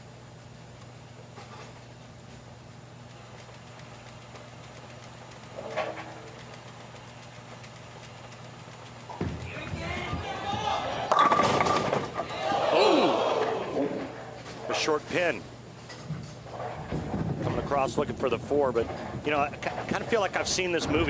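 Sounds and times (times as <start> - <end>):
steady low hum: 0.0 - 21.0
bowling ball hitting pins: 9.2 - 12.3
crowd cheering and shouting: 9.5 - 11.3, 12.1 - 14.1.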